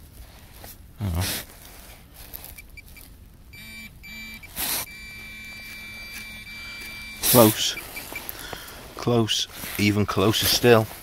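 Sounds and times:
pinpointer electronic beeps and tone: 2.6s - 8.3s.

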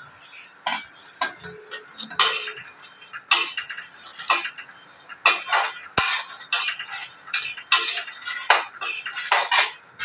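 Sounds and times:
metal utensils and dishes clinking: 0.2s - 10.0s.

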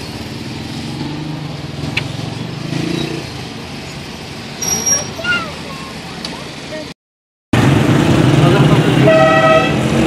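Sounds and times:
road traffic from inside car: 0.0s - 7.0s, 7.6s - 10.0s.

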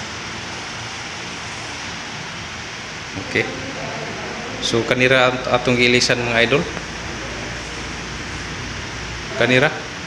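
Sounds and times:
fan air whoosh: 0.0s - 10.0s
fan motor hum: 0.0s - 10.0s.

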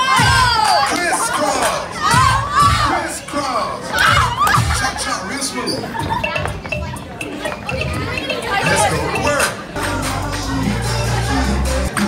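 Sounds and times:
dance music with bass beat: 0.0s - 2.9s, 4.1s - 12.0s
teenagers shouting and singing: 0.0s - 12.0s.

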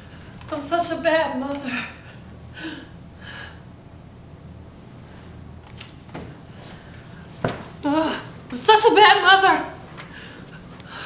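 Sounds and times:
cushion rustling: 6.0s - 7.8s
thump on wood: 7.4s - 7.7s.

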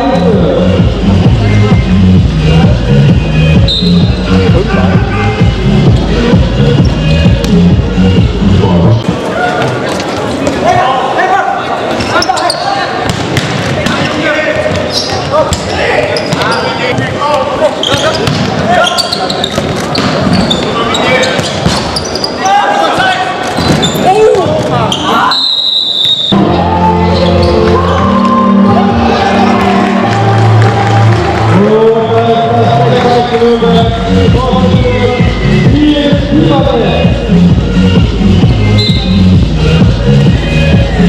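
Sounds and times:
crowd voices and shouts: 0.0s - 41.0s
electronic background music: 26.4s - 41.0s.

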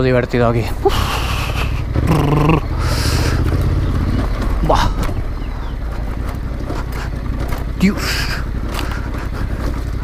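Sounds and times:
motorcycle engine running: 0.0s - 10.0s
stones knocking under wheels: 6.0s - 10.0s.

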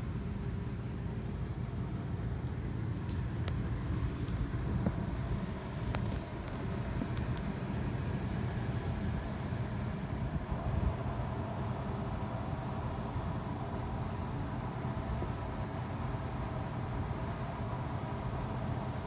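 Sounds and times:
low background rumble: 0.0s - 19.0s.

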